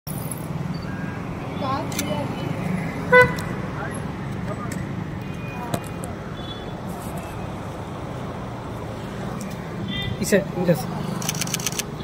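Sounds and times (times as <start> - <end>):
street traffic rumble: 0.1 - 12.0.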